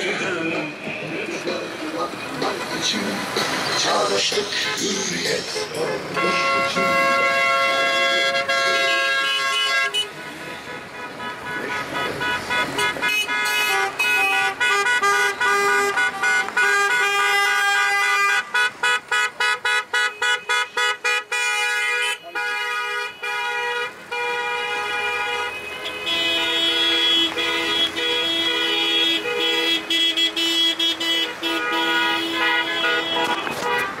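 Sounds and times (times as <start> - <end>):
car horns honking together: 6.1 - 34.0.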